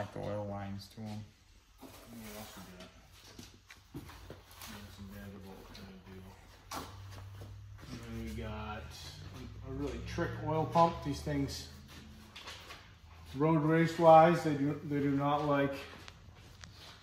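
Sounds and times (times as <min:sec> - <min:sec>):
indistinct male talk: 0:07.8 - 0:11.8.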